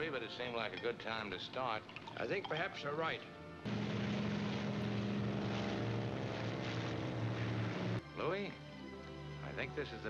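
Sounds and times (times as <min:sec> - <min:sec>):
propeller airplane droning overhead: 0:03.2 - 0:10.0.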